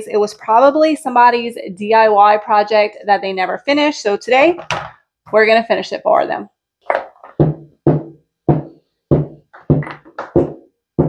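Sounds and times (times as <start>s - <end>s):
hollow percussive knocks: 6.9s - 10.7s.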